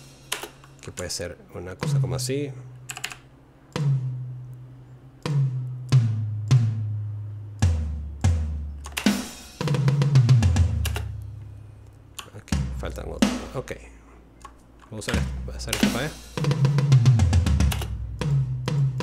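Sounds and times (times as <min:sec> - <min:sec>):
drum toms struck: 0:01.8 - 0:02.3, 0:03.8 - 0:04.3, 0:05.2 - 0:11.0, 0:12.5 - 0:13.7, 0:15.0 - 0:19.0.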